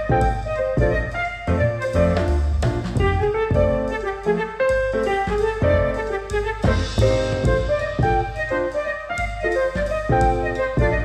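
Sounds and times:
repeated bass beat: 0:00.0 - 0:11.0.

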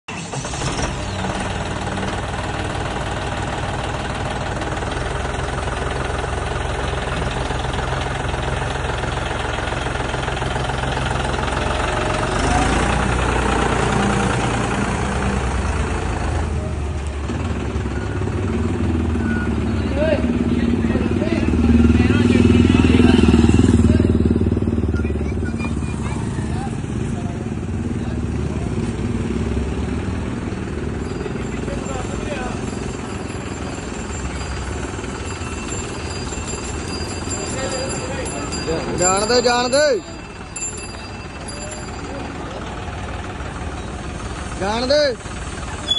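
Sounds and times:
tractor diesel engine running: 0:00.1 - 0:45.9.

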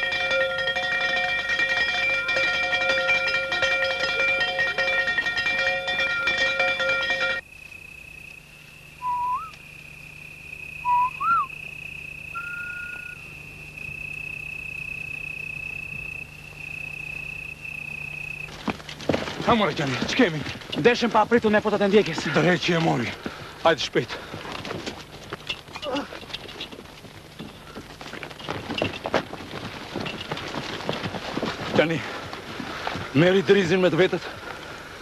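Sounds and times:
high insect drone: 0:00.0 - 0:35.0
short rising whistles: 0:09.0 - 0:09.6, 0:10.6 - 0:15.9.

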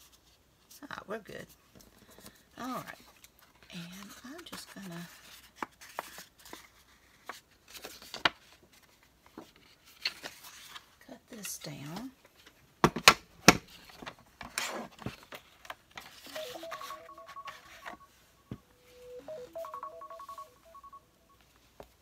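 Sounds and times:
appliance beeping tune: 0:16.4 - 0:21.2.

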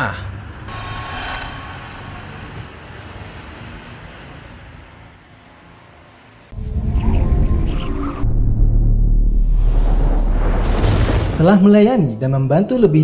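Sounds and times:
rushing sound effect: 0:00.5 - 0:05.1
loud deep hit: 0:00.7 - 0:03.5, 0:08.2 - 0:11.4.

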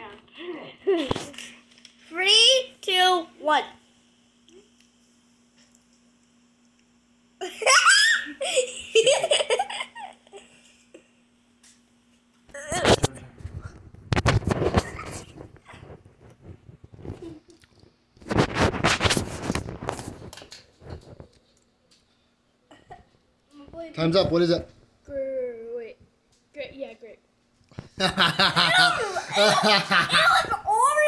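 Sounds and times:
high-pitched laughter: 0:07.4 - 0:10.5, 0:28.1 - 0:30.6
rustling and knocking at microphone: 0:12.8 - 0:21.3.

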